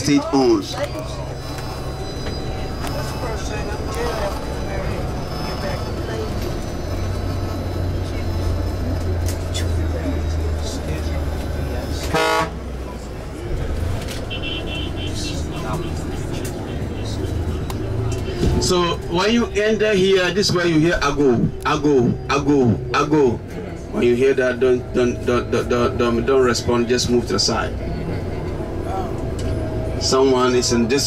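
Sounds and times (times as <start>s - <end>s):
bus engine running: 0.0s - 31.0s
city street noise: 0.0s - 31.0s
high beeping: 1.1s - 8.8s
vehicle horn toot: 12.1s - 12.6s, 14.2s - 15.3s.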